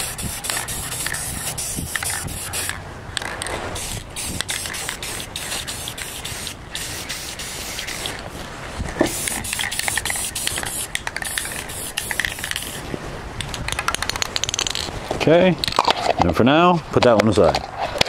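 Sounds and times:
aerosol spray can hissing: 0:00.0 - 0:02.7, 0:03.8 - 0:08.2, 0:09.1 - 0:12.8.

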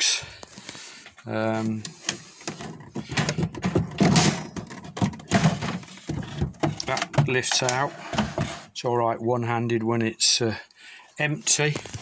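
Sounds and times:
wooden knocks and scraping: 0:01.5 - 0:08.8.

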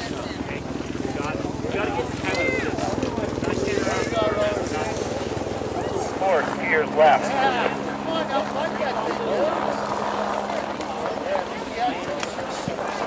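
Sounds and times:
low mechanical hum: 0:00.0 - 0:13.0
people talking: 0:00.0 - 0:13.0.

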